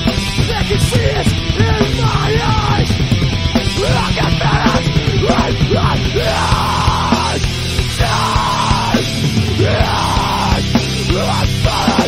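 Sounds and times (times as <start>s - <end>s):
distorted guitars: 0.0s - 12.0s
fast drums: 0.0s - 12.0s
harsh yelled vocal: 0.0s - 12.0s.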